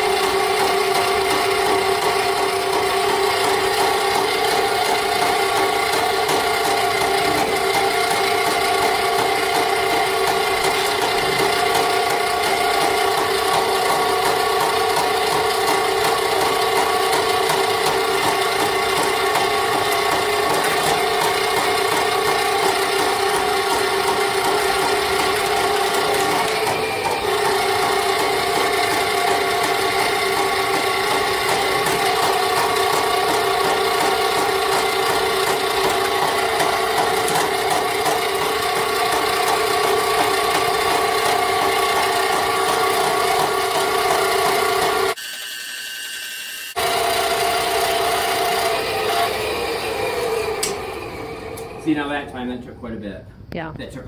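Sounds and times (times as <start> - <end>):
sewer snake motor hum and rattle: 0.0 - 52.2.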